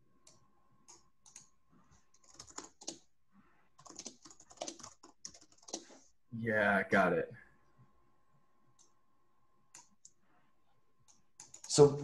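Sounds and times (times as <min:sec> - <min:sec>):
computer keyboard typing: 0:00.2 - 0:03.1, 0:03.8 - 0:06.0, 0:11.1 - 0:11.9.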